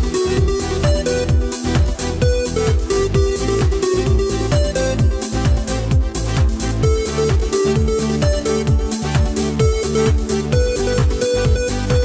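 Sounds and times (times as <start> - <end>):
drum kit steady beat: 0.0 - 12.0
upbeat pop instrumental: 0.0 - 12.0.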